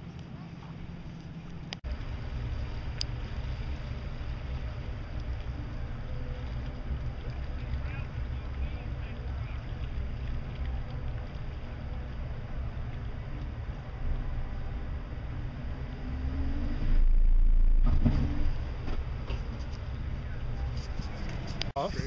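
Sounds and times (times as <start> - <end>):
outboard motors idling: 0.0 - 16.4.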